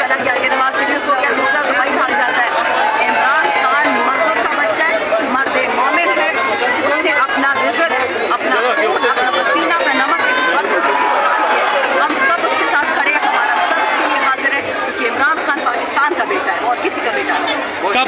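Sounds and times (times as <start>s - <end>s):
woman speaking into microphone: 0.0s - 11.0s, 12.0s - 17.6s
crowd chattering: 0.0s - 18.0s.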